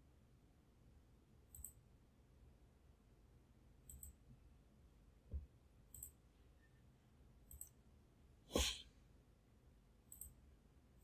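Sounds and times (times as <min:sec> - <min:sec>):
faint clicks: 0:03.8 - 0:04.2
breath or sniff: 0:08.5 - 0:08.9.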